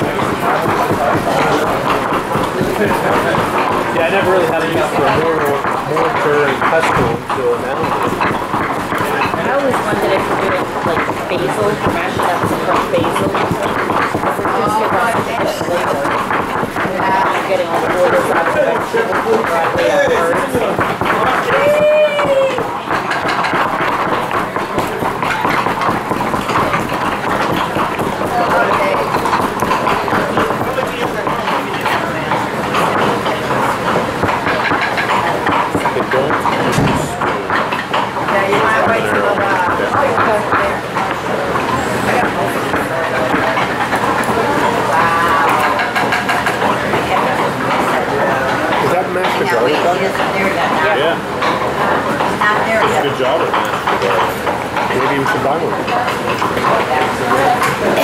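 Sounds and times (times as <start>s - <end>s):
knives chopping vegetables: 0.0s - 50.3s
group of people chatting: 0.0s - 58.0s
pestles grinding in stone mortars: 0.0s - 58.0s.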